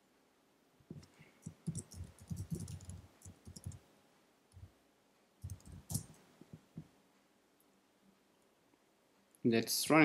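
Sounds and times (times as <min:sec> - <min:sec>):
typing on computer keyboard: 0:01.4 - 0:03.8, 0:05.4 - 0:06.2.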